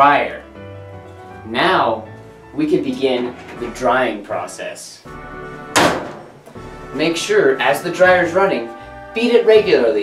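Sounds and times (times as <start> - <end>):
background music: 0.0 - 10.0
dryer door slamming shut: 5.7 - 6.4.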